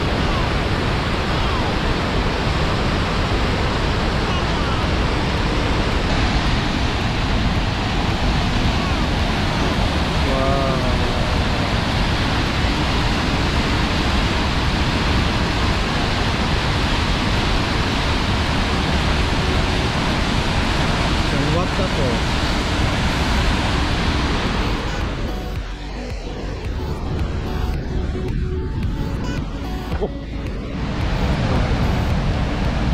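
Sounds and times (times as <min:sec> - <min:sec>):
waterfall rushing: 0:00.0 - 0:32.9.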